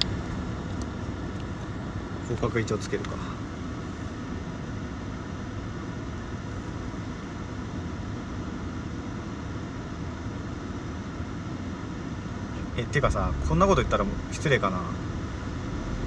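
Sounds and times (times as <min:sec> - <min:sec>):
car engine idling in cabin: 0:00.0 - 0:16.0.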